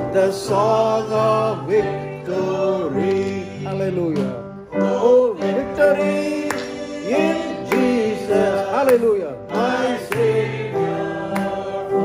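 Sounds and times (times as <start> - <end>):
man singing a slow hymn: 0.0 - 10.3
instrumental accompaniment: 0.0 - 12.0.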